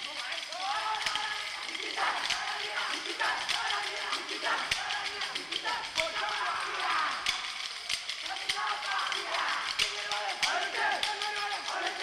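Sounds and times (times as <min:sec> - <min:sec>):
group of voices singing: 0:00.8 - 0:12.0
wooden sticks clacking: 0:01.0 - 0:12.0.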